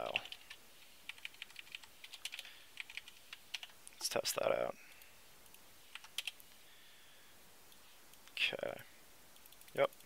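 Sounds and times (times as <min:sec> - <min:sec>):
typing on computer keyboard: 0:00.0 - 0:00.5, 0:01.1 - 0:03.8, 0:05.9 - 0:06.4.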